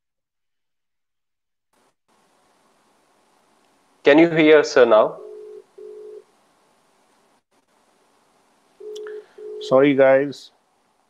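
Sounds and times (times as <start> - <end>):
telephone ringback tone: 5.2 - 6.2, 8.8 - 9.8.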